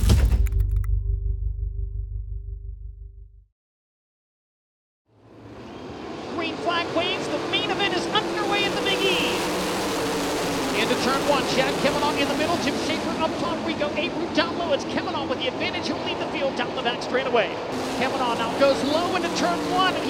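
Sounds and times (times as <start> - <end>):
race car engines: 5.1 - 20.0.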